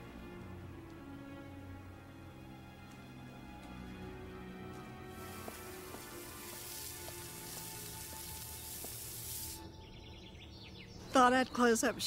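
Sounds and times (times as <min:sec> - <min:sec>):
faint background music: 0:00.0 - 0:12.0
outdoor noise hiss: 0:04.8 - 0:09.8
birds chirping: 0:07.4 - 0:12.0.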